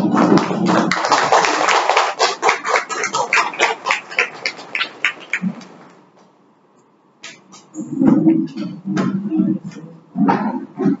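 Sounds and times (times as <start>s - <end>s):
indistinct voices: 7.3s - 11.0s.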